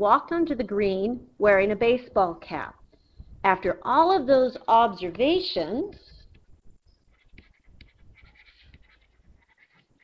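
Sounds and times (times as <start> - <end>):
stylus scratching on tablet screen: 5.9 - 10.0.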